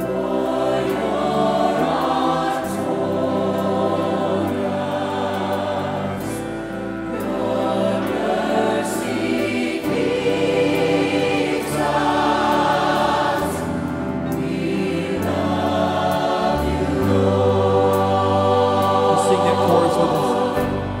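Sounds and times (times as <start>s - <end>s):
choir singing worship song: 0.0s - 21.0s
musical accompaniment: 0.0s - 21.0s.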